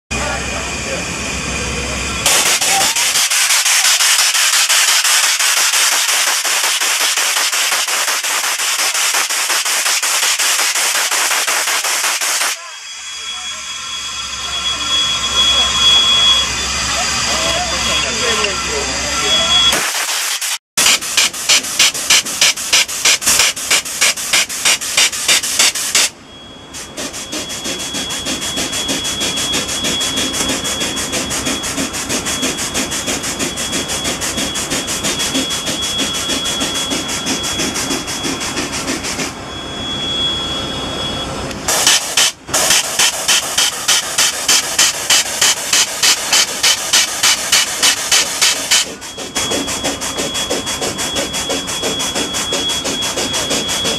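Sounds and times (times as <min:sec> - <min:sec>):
steam locomotive hissing: 0:00.1 - 0:39.5, 0:41.6 - 0:53.9
air-powered grease gun clattering: 0:02.3 - 0:12.6, 0:19.7 - 0:26.2, 0:41.7 - 0:53.9.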